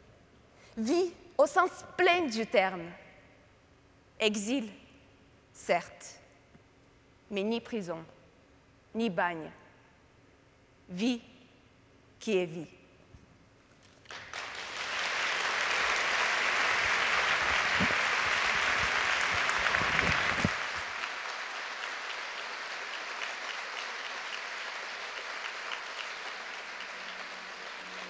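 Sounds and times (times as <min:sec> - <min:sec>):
audience applauding: 0:14.0 - 0:28.0.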